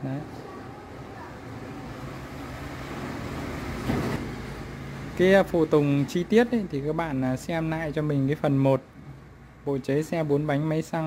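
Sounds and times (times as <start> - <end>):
road vehicle noise: 0.0 - 11.0.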